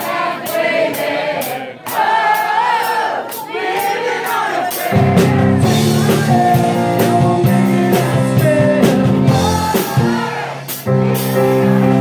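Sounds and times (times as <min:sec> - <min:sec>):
voices singing together: 0:00.0 - 0:12.0
live rock music: 0:04.7 - 0:12.0.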